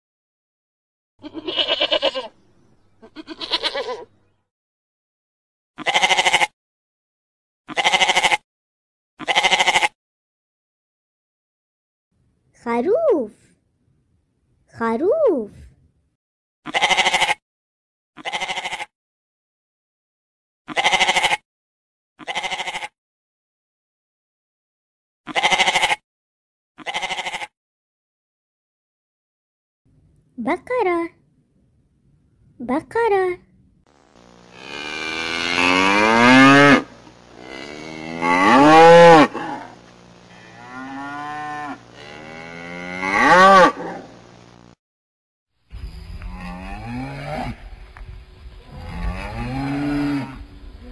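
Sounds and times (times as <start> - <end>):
sheep bleating: 1.2 - 2.3, 3.0 - 4.1, 5.8 - 6.5, 7.7 - 8.4, 9.2 - 10.0, 16.7 - 17.4, 18.2 - 18.9, 20.7 - 21.4, 22.2 - 22.9, 25.3 - 26.0, 26.8 - 27.5
cow mooing: 34.5 - 44.1, 46.2 - 47.6, 48.7 - 50.5.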